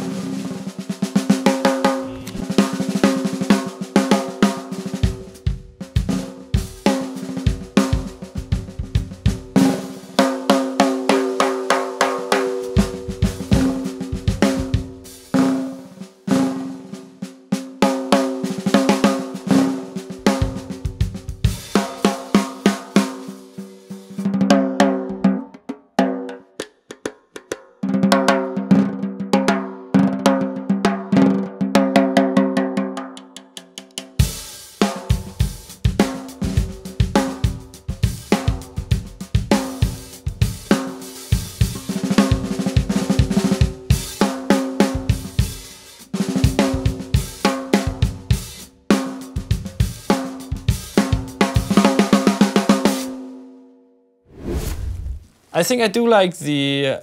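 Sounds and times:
drum kit groove: 0.0s - 29.0s, 33.8s - 53.2s
snare drum played with sticks: 0.0s - 30.4s, 31.1s - 53.2s.

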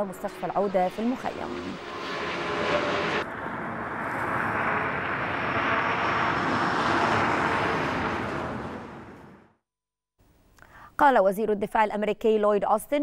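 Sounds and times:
aircraft flying overhead: 0.0s - 9.6s.

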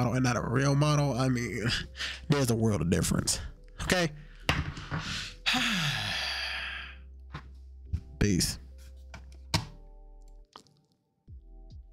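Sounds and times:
man sighing: 4.9s - 7.0s.

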